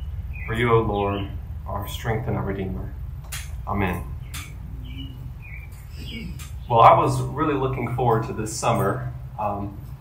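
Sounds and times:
birds chirping: 0:00.0 - 0:10.0
low steady hum: 0:00.0 - 0:10.0.

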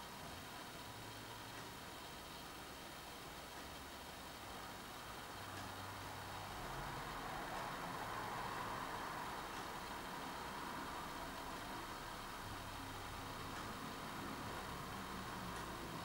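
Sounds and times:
faint ticks: 0:03.4 - 0:06.7, 0:12.4 - 0:16.0.

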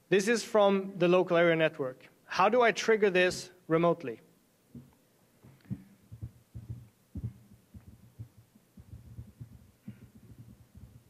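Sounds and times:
laptop keyboard typing: 0:05.6 - 0:11.0.

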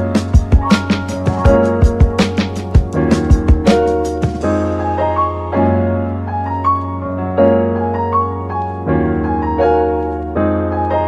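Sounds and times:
relaxing piano music: 0:00.0 - 0:11.0.

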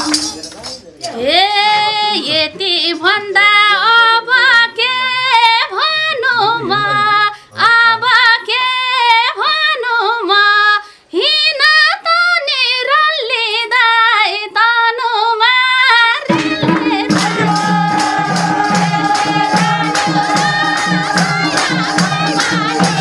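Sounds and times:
woman singing folk song: 0:01.1 - 0:23.0
singer breathing: 0:07.3 - 0:07.6, 0:10.8 - 0:11.1.

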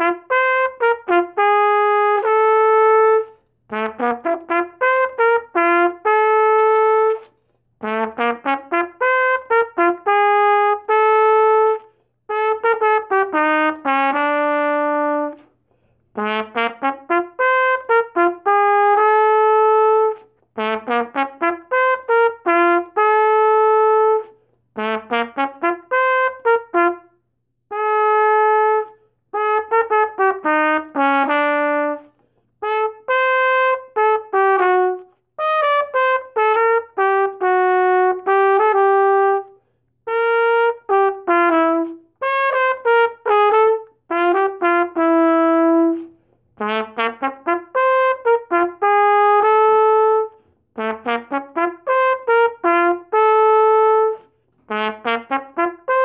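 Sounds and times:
trumpet playing runs: 0:00.0 - 0:15.5, 0:16.1 - 0:56.0.

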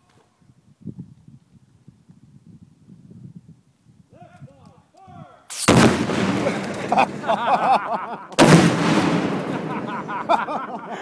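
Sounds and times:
explosive blast: 0:05.5 - 0:07.4, 0:08.4 - 0:10.1
people laughing: 0:06.4 - 0:08.4, 0:09.4 - 0:11.0.

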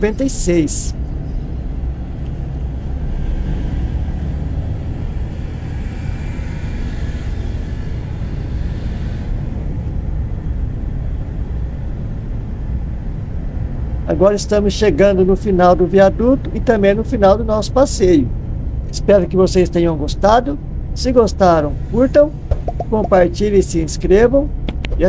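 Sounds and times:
car engine and tyre noise: 0:00.0 - 0:25.0.

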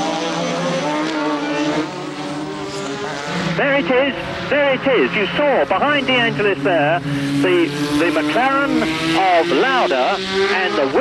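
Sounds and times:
racing car engine at high revs: 0:00.0 - 0:11.0.

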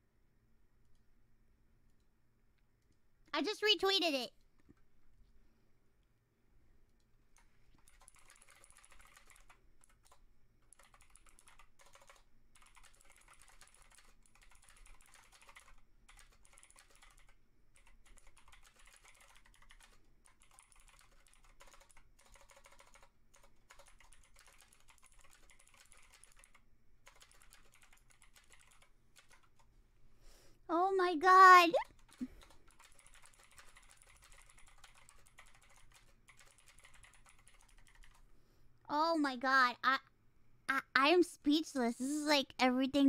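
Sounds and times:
faint keyboard typing: 0:00.8 - 0:01.2, 0:01.8 - 0:05.3, 0:06.8 - 0:29.8, 0:30.7 - 0:38.9.

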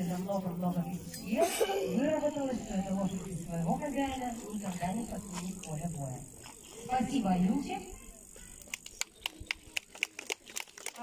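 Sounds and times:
people clapping: 0:08.6 - 0:11.0.

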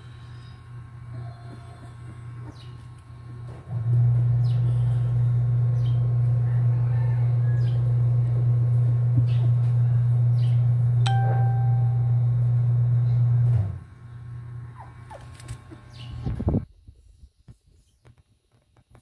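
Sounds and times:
loud low hum: 0:03.5 - 0:14.8
brief higher tone: 0:11.0 - 0:12.8.

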